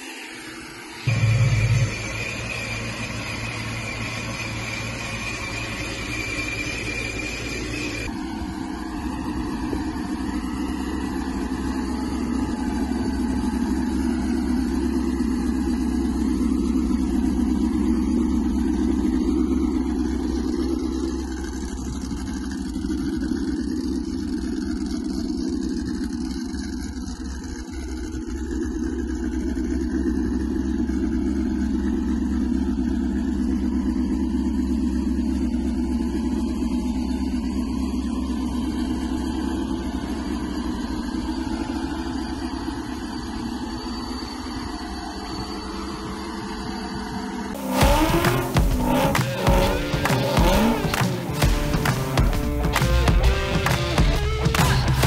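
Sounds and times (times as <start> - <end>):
steady high tone: 0.0 - 22.3, 38.7 - 55.0
car engine idling: 0.0 - 55.0.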